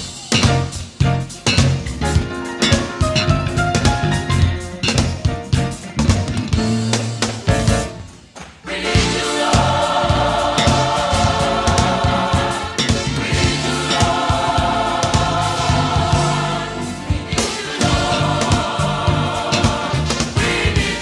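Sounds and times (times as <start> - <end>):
drum beat: 0.0 - 8.1, 8.8 - 21.0
gospel choir singing: 8.5 - 21.0.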